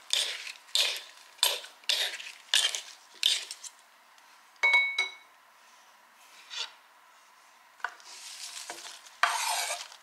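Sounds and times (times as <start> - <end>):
ringing clink of dishes: 4.6 - 5.3
utensils scraping dishes: 9.2 - 10.0.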